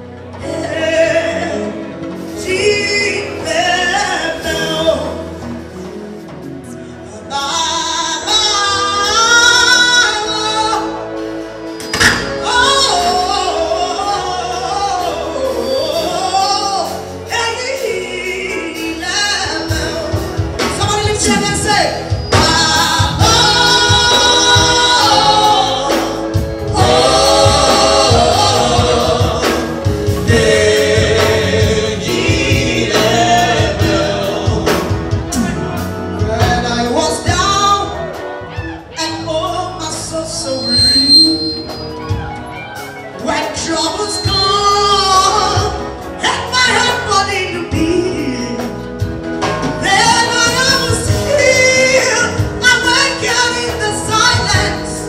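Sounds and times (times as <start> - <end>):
band with drums: 0.0 - 55.0
woman singing gospel: 0.4 - 5.3, 7.1 - 11.1, 12.0 - 35.5, 36.2 - 41.2, 42.7 - 49.0, 49.6 - 55.0.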